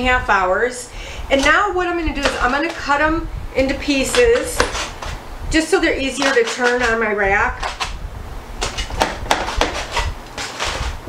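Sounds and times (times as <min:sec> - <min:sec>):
knife and fork scraping: 0:03.9 - 0:08.0, 0:08.6 - 0:11.0
foil crackling: 0:08.6 - 0:11.0.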